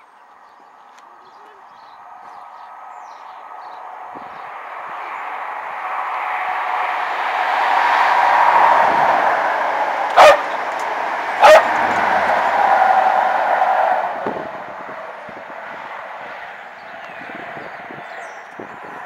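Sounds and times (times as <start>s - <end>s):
passenger train passing: 2.0s - 19.0s
dog barking sharply: 10.1s - 10.6s, 11.4s - 11.9s.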